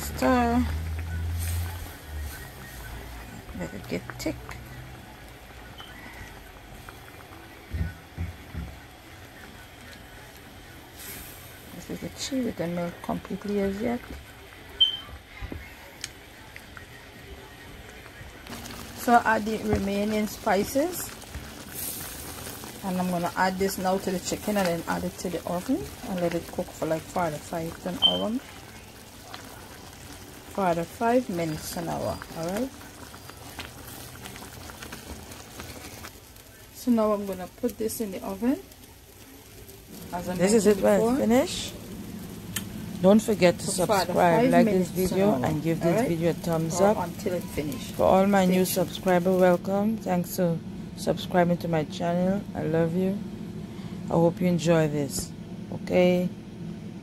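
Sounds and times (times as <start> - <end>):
sauce bubbling in a frying pan: 0.0 - 54.1.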